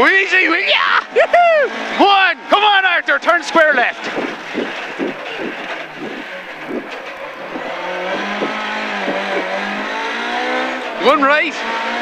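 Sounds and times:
rally car engine from inside cabin: 0.4 - 12.0.

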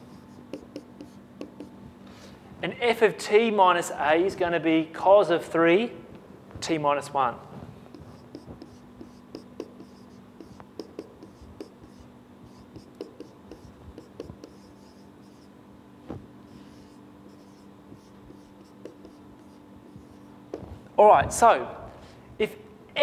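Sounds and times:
marker writing on a whiteboard: 0.0 - 1.8, 7.9 - 15.5, 16.1 - 20.8
faint room hum: 0.0 - 23.0.

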